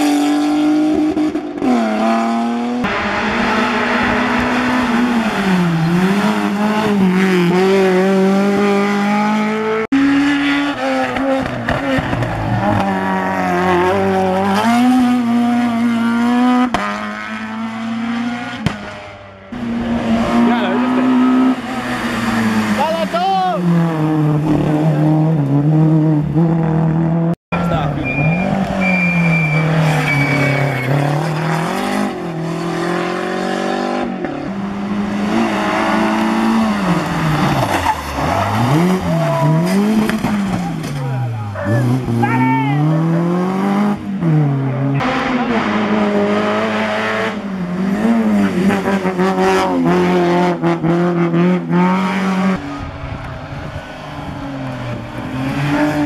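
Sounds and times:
rally car engines revving: 0:00.0 - 0:56.0
tyre squeal: 0:27.8 - 0:31.3.

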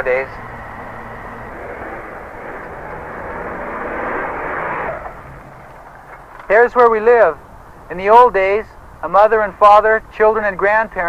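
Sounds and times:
truck engine and tyre noise: 0:00.0 - 0:11.0.

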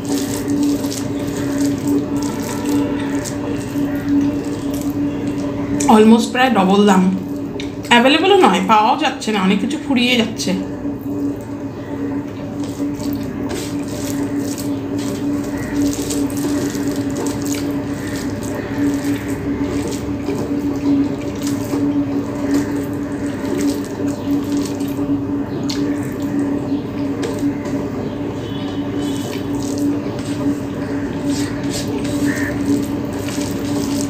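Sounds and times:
fingers squishing wet rice: 0:00.0 - 0:05.9, 0:12.6 - 0:25.0, 0:29.0 - 0:34.0
steady low hum: 0:00.0 - 0:34.0.

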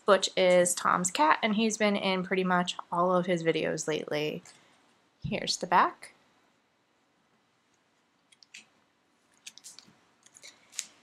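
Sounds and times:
cards and plastic packaging crinkling: 0:09.4 - 0:11.0.

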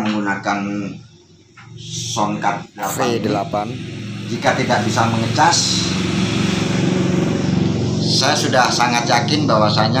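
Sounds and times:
low engine-like drone: 0:00.0 - 0:10.0.

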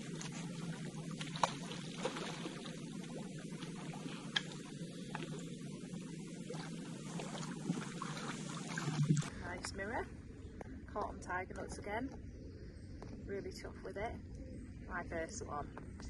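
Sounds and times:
water sloshing and splashing: 0:00.0 - 0:11.8.

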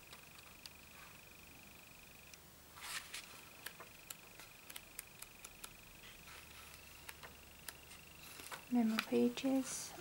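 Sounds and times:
diary pages turning: 0:02.8 - 0:09.6.

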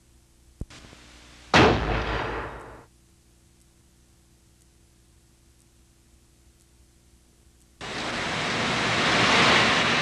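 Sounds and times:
soft hiss: 0:00.0 - 0:01.6, 0:02.6 - 0:10.0
loud blast-like boom: 0:01.5 - 0:02.8.

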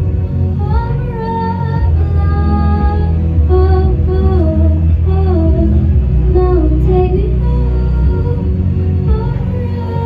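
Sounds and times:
backing track with deep bass: 0:00.0 - 0:10.0
woman singing into a microphone: 0:00.3 - 0:10.0.

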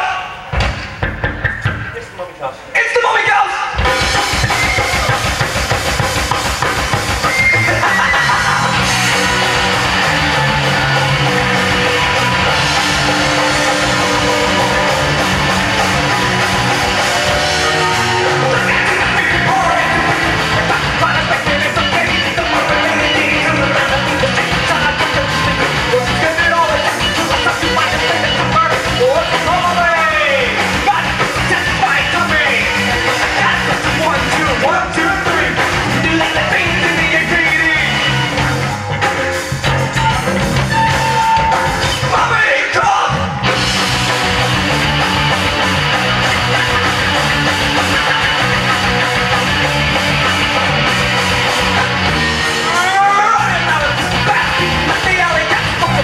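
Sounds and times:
drum kit: 0:00.0 - 0:02.3, 0:03.7 - 0:56.0
electric guitar: 0:03.8 - 0:42.4, 0:43.1 - 0:56.0
person singing into microphone: 0:17.7 - 0:38.0.

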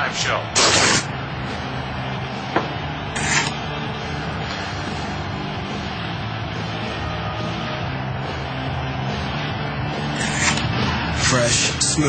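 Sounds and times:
rasping swish: 0:10.1 - 0:10.8.

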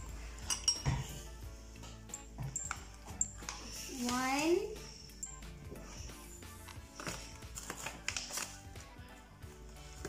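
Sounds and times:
faint background music: 0:00.0 - 0:10.0
metal spoon clinking dishes: 0:00.3 - 0:01.3.

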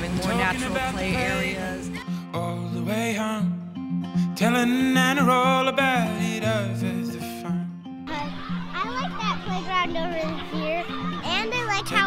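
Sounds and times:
background music: 0:00.0 - 0:12.0
children shouting at play: 0:08.1 - 0:12.0.

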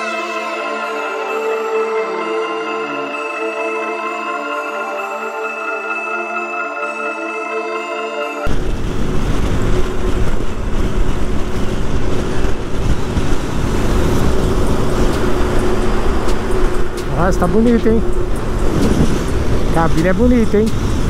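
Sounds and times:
background music with mallet tones: 0:00.0 - 0:08.5
motorcycle engine drone: 0:08.5 - 0:21.0
wind rushing over microphone: 0:08.5 - 0:21.0.

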